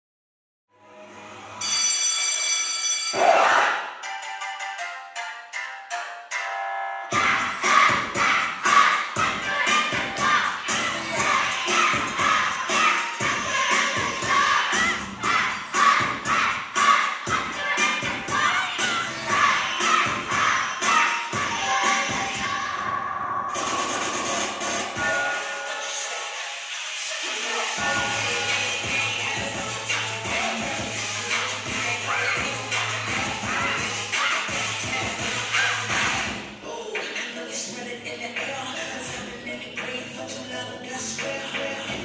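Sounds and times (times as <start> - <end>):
dance music track: 3.2 - 42.0
steady beat: 7.1 - 22.5, 27.8 - 36.4.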